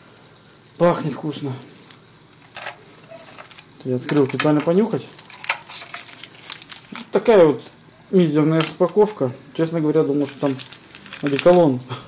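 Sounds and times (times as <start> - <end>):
tea packet crinkling: 1.9 - 7.3, 10.1 - 11.9.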